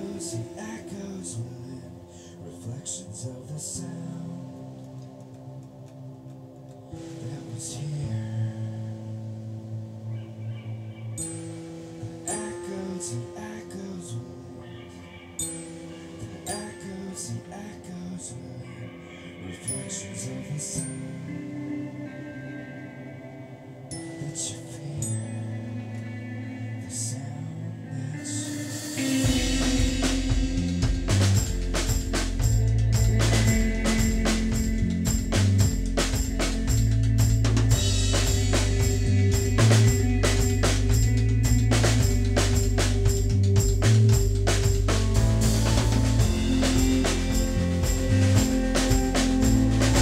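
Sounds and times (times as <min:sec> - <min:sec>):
electric guitar: 0:00.0 - 0:50.0
keyboard sustained notes: 0:00.0 - 0:50.0
low bass notes: 0:25.0 - 0:50.0
rock band playing live: 0:28.3 - 0:50.0
cymbal crashes: 0:28.8 - 0:42.8, 0:44.3 - 0:50.0
drum kit beat: 0:28.9 - 0:50.0.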